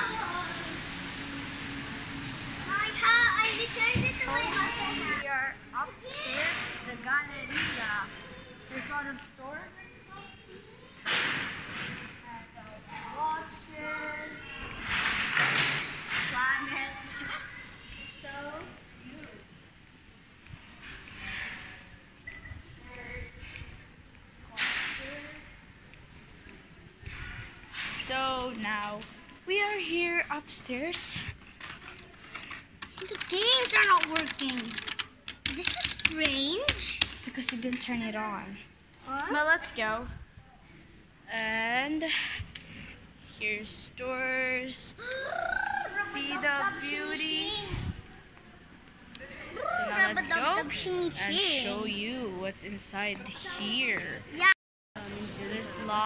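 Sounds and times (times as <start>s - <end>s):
young children chattering: 2.7s - 11.1s, 16.4s - 19.5s, 44.7s - 51.9s.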